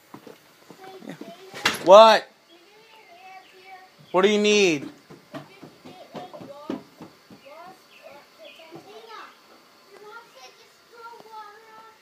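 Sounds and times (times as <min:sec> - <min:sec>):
children playing and calling out: 0:00.7 - 0:04.2, 0:05.3 - 0:12.0.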